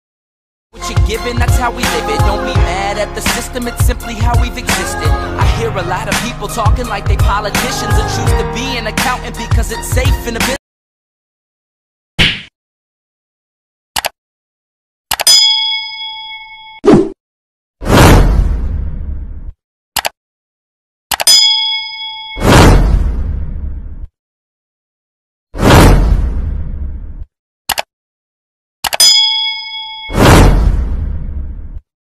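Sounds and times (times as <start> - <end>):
mouse click: 14.0 - 14.2, 20.0 - 20.2
bell-like notification ding: 15.3 - 16.8, 21.3 - 22.4, 29.0 - 30.2
short swish: 17.8 - 18.6, 22.4 - 23.2, 25.6 - 26.4, 30.1 - 31.1
whoosh and boom effect: 17.8 - 19.5, 22.4 - 24.1, 25.6 - 27.2, 30.1 - 31.8.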